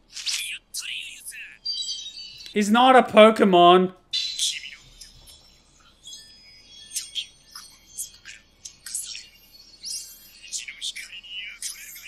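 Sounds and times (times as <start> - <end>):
high-pitched chirps: 0.8 - 3.0, 4.2 - 12.0.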